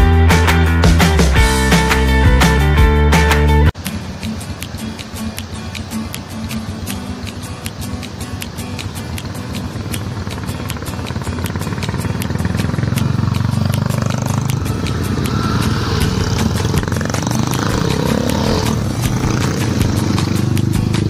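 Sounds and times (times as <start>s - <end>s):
background music with steady beat: 0.0s - 21.0s
motorcycles passing by: 3.7s - 21.0s.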